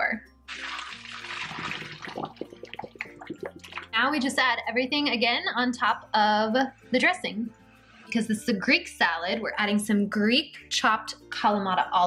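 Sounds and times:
water pouring into a sink: 0:00.5 - 0:04.0.

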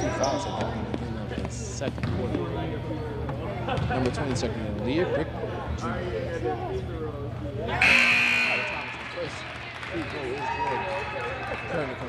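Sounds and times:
crowd chatter in a gymnasium: 0:00.0 - 0:12.0.

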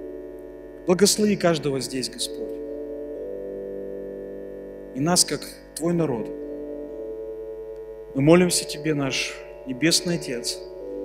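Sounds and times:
soft keyboard pad chord: 0:00.0 - 0:11.0.

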